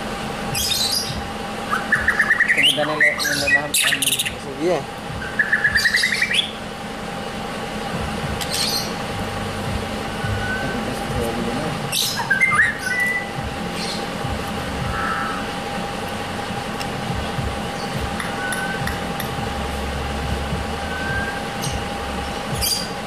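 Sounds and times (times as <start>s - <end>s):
songbirds chirping and whistling: 0.0s - 23.0s.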